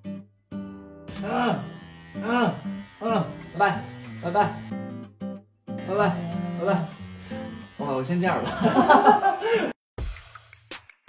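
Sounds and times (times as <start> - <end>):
electric hair clippers buzzing: 1.1 - 4.7, 5.8 - 9.7.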